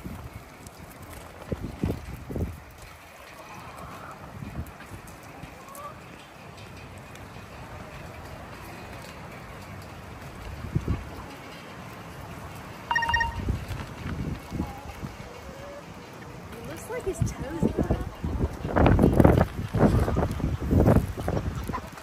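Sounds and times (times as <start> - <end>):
chickens clucking: 5.2 - 6.2, 14.4 - 19.1, 19.7 - 22.0
high-pitched poultry call: 12.9 - 13.5.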